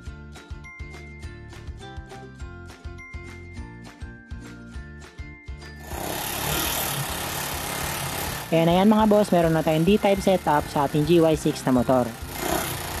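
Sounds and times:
background music with beat: 0:00.0 - 0:05.9
scooter engine running: 0:05.7 - 0:13.0.

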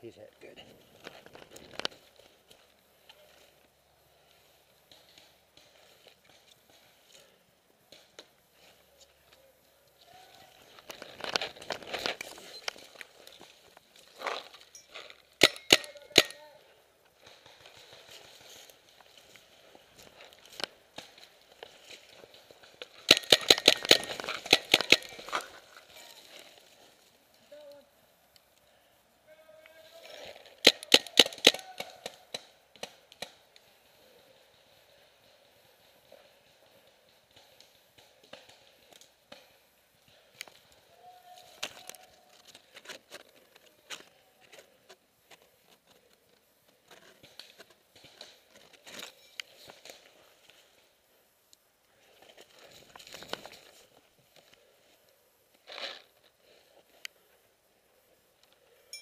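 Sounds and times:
rustling: 0:00.5 - 0:58.9
paintball markers firing: 0:15.4 - 0:16.4, 0:23.0 - 0:25.3, 0:30.6 - 0:33.5.

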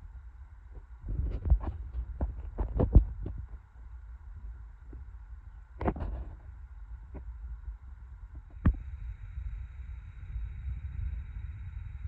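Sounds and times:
faint steady hum: 0:00.0 - 0:12.0
low thumps and rumble: 0:00.7 - 0:03.7, 0:08.3 - 0:12.0.

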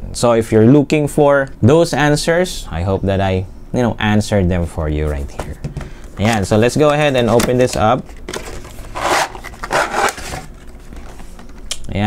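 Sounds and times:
cardboard box sliding scrape: 0:08.9 - 0:10.5.

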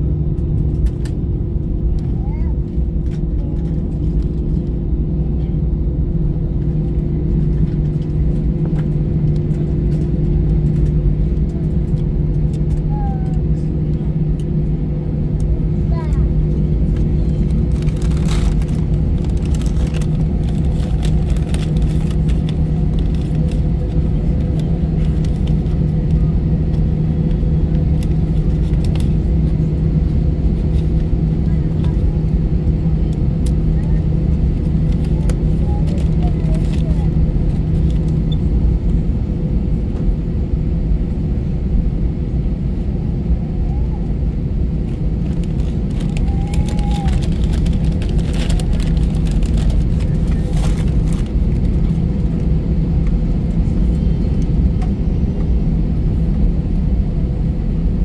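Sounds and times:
aircraft cabin engine drone: 0:00.0 - 0:58.0
constant hum tones: 0:00.0 - 0:58.0.

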